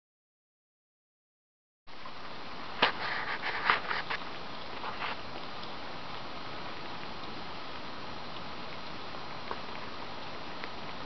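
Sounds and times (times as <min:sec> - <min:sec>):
steady outdoor hiss: 0:01.9 - 0:11.0.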